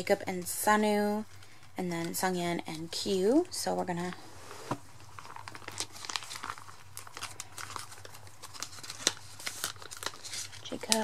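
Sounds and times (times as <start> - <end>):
plastic pages crinkling: 4.8 - 11.0.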